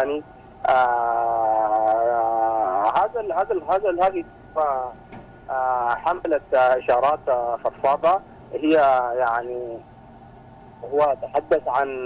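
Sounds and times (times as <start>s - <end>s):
man saying aah over telephone: 0.0s - 9.8s, 10.8s - 12.0s.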